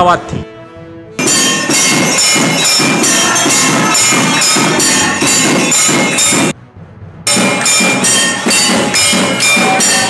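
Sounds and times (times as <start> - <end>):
percussion music with clanging metal: 1.2 - 10.0.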